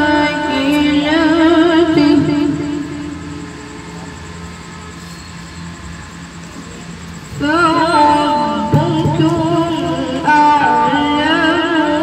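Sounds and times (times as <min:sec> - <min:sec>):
public address hum and hiss: 0:00.0 - 0:12.0.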